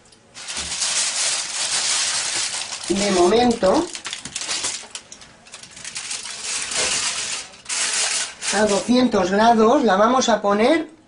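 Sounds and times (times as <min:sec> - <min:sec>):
foil rustling and tin scraping: 0:00.4 - 0:09.3.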